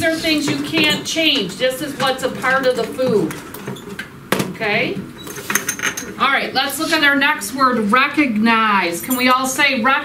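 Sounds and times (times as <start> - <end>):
voices talking: 0.0 - 3.5.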